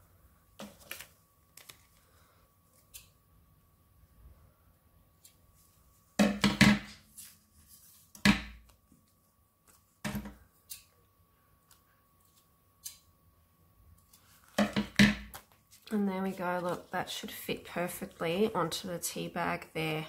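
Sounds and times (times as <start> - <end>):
paper and card tapping and rustling: 0.5 - 2.1, 14.1 - 17.0.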